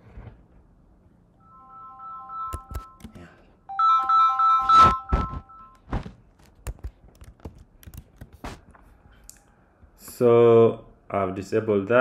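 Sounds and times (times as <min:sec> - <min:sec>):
electronic alert tone pulsing: 0:03.7 - 0:05.8
heavy thunk: 0:05.1 - 0:06.2.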